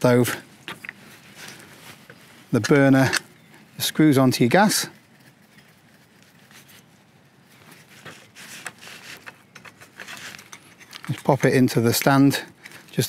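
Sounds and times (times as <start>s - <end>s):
stove handling clicks and rustles: 0.7s - 3.4s, 8.0s - 13.0s.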